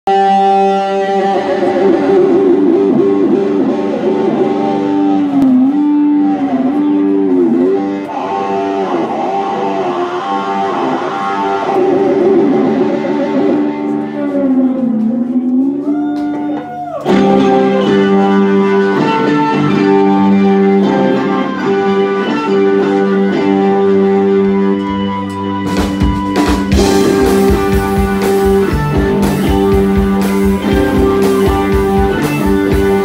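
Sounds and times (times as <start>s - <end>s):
electric guitar bending notes: 0.1s - 33.0s
rock band playing: 0.1s - 33.0s.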